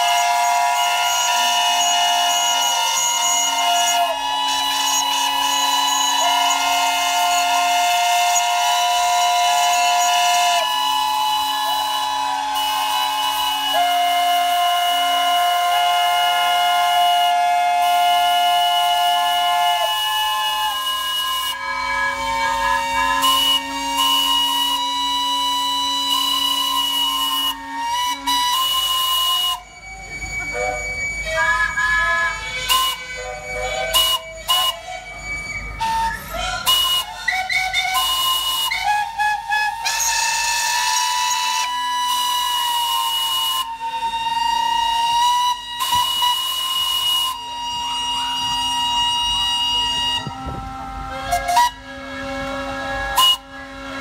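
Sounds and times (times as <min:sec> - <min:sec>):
steam whistles blowing: 0:00.0 - 0:54.0.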